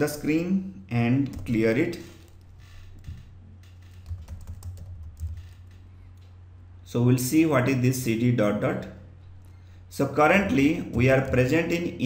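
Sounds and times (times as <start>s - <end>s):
steady low hum: 0.0s - 12.0s
keyboard typing clicks: 1.2s - 6.4s.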